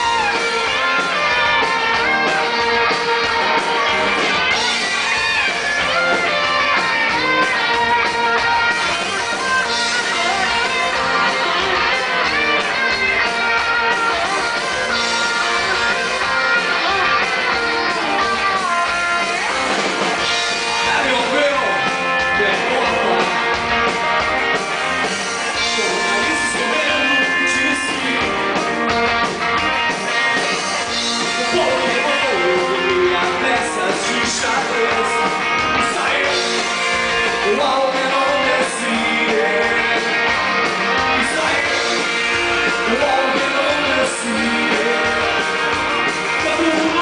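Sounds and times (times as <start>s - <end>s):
bass guitar: 0.0s - 47.0s
electric guitar lead: 0.0s - 47.0s
live rock band playing: 0.0s - 47.0s.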